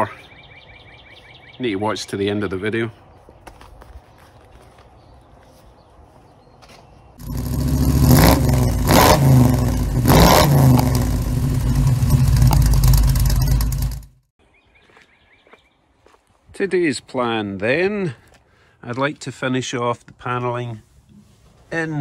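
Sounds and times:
faint outdoor background: 0.0 - 22.0
engine revving: 7.2 - 14.2.

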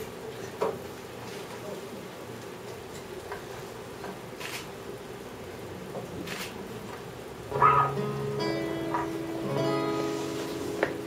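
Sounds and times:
guitar notes and chords ringing: 7.5 - 11.0.

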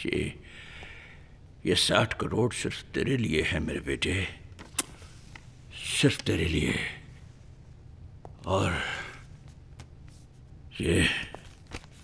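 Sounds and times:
elderly man speaking: 5.7 - 7.1, 10.7 - 11.4.

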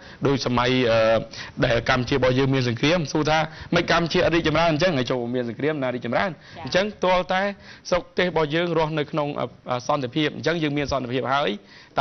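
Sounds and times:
man speaking: 0.2 - 12.0.

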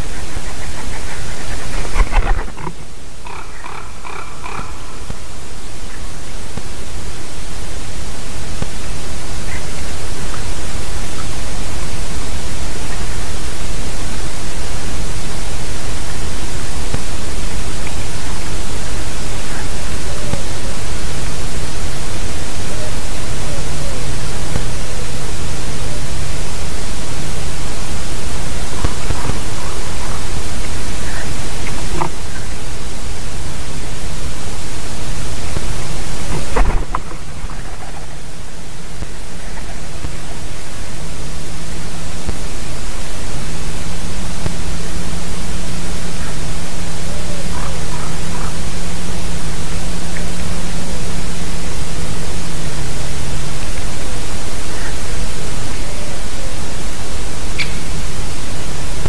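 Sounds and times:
high bird calls: 0.0 - 6.4, 57.5 - 58.0.

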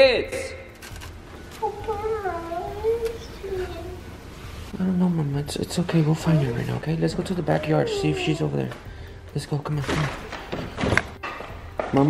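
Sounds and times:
child crying: 1.6 - 4.1, 6.0 - 8.8.

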